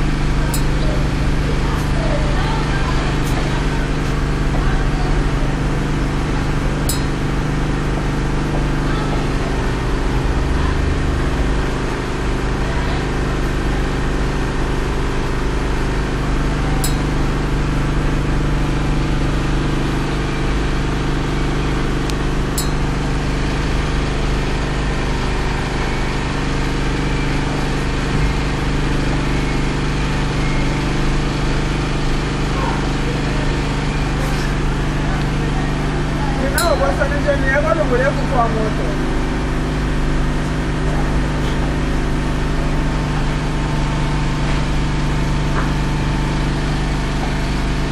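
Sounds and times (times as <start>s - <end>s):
generator engine humming: 0.0s - 47.9s.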